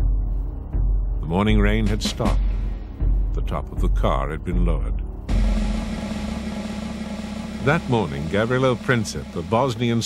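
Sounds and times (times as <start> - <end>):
car engine running: 5.3 - 10.0.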